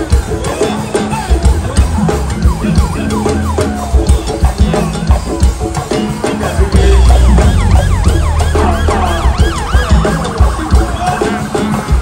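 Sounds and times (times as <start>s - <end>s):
live band with bass and drums: 0.0s - 12.0s
siren-like swooping wail: 1.7s - 5.2s, 6.8s - 11.6s.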